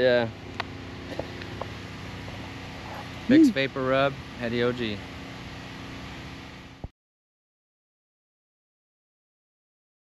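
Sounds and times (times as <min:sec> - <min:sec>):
outdoor background hiss: 0:00.0 - 0:06.9.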